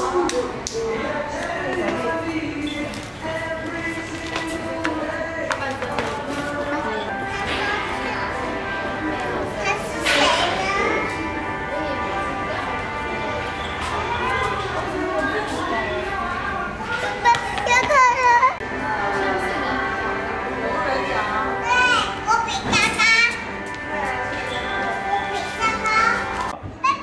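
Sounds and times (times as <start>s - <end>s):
faint background music: 0.0s - 27.0s
babble of children: 7.1s - 20.2s, 20.9s - 23.6s
children shouting and squealing: 12.2s - 18.7s, 24.9s - 27.0s.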